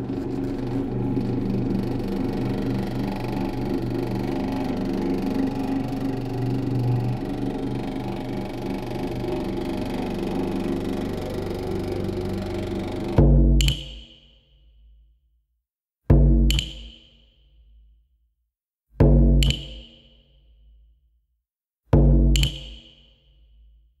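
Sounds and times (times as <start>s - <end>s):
dense low drone: 0.0s - 13.2s.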